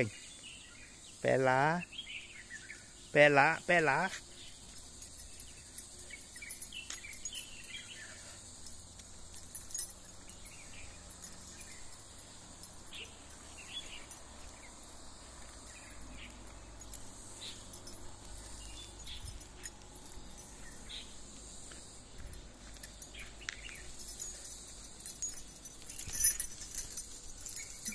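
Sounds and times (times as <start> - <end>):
faint chirps and ticks: 0.0 - 27.9
metallic jingling: 2.4 - 27.9.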